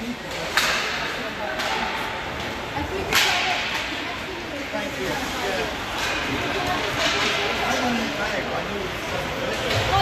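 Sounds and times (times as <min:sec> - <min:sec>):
hockey sticks cracking on ice: 0:00.3 - 0:04.1, 0:05.2 - 0:07.7.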